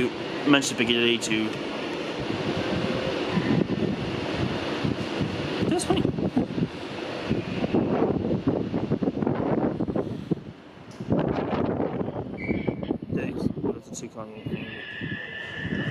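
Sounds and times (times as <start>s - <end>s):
diesel train engine: 0.0s - 15.9s
wind buffeting microphone: 1.6s - 15.9s.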